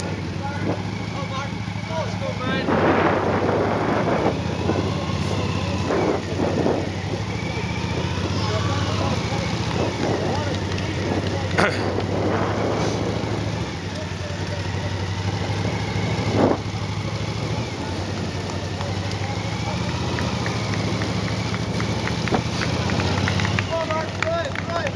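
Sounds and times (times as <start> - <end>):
low vehicle engine hum: 0.0 - 24.9
spectators clapping: 18.2 - 24.9.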